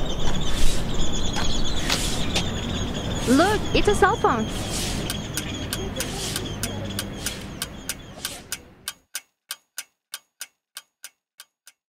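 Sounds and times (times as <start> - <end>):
sharp ticking clicks: 1.1 - 11.8.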